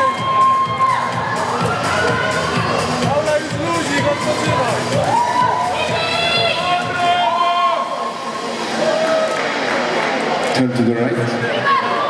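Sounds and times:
audience cheering: 0.0s - 10.4s
background music: 0.0s - 12.0s
long drawn-out shouts: 3.8s - 9.4s.

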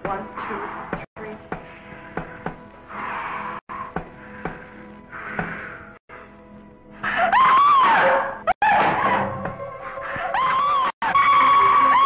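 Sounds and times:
eerie sustained music: 0.0s - 12.0s
hissing breaths: 0.4s - 7.1s.

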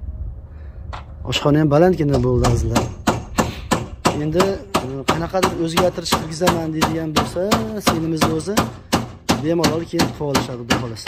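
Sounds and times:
rapid sharp knocks: 2.1s - 11.0s.

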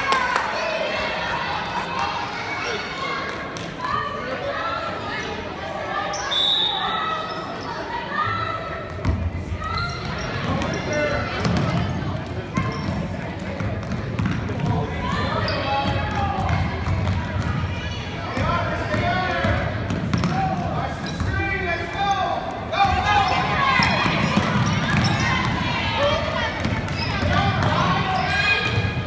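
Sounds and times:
echoing voices and shouts: 14.5s - 29.0s.

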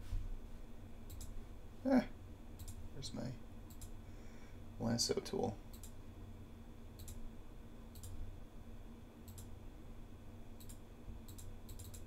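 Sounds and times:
faint steady hum: 0.0s - 12.0s
computer mouse clicking: 1.1s - 1.3s, 2.6s - 2.8s, 3.7s - 4.0s, 5.4s - 6.0s, 7.0s - 7.2s, 7.9s - 8.2s, 9.2s - 9.5s, 10.6s - 12.0s.

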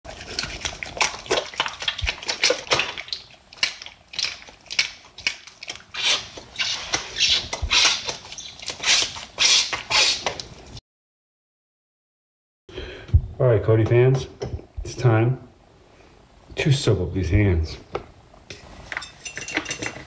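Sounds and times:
soapy hands squelching: 0.1s - 10.5s.

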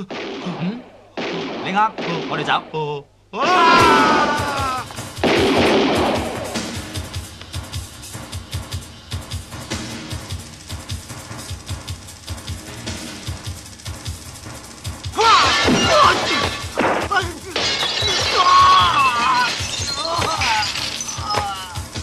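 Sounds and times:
people crying and screaming: 3.4s - 5.0s, 15.2s - 16.5s, 17.2s - 22.0s
music with steady drum beat: 3.8s - 17.6s, 21.3s - 22.0s
glass shattering: 15.2s - 21.8s.

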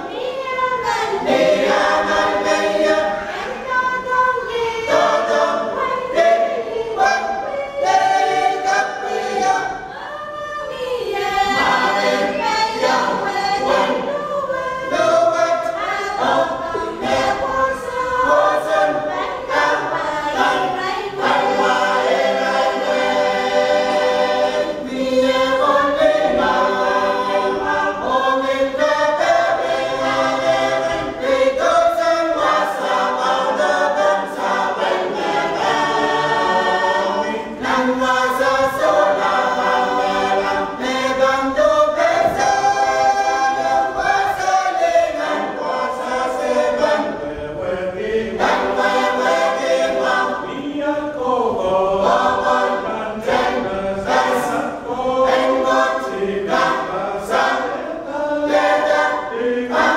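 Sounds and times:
choir singing a hymn: 0.0s - 59.9s.

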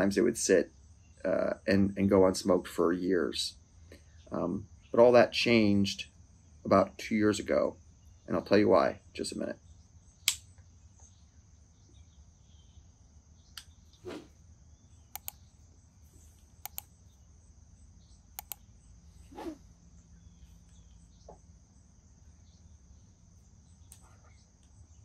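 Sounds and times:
high insect chirr: 0.0s - 25.0s.

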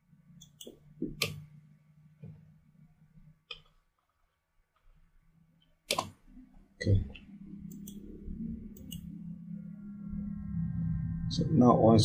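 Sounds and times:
sharp mouse click: 5.9s - 6.2s.

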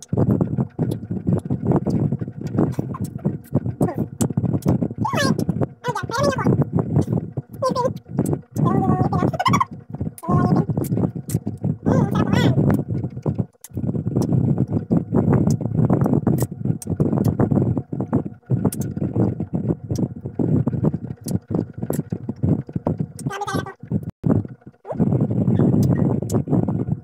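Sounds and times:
muffled voice: 2.5s - 4.2s, 5.0s - 12.8s, 23.2s - 23.8s.

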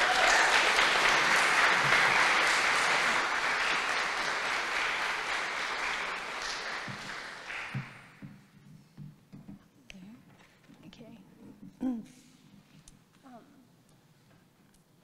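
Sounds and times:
audience applauding: 0.0s - 8.2s.

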